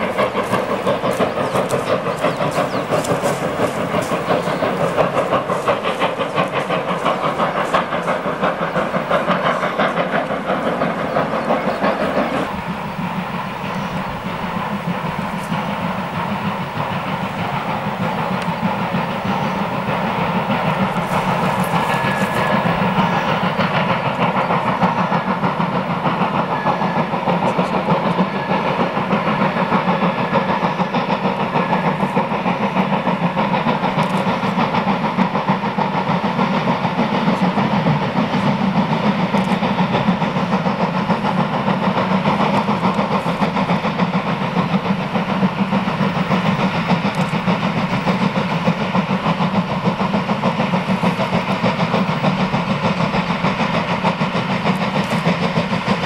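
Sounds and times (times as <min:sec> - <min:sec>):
steam locomotive running: 0:00.0 - 0:56.0.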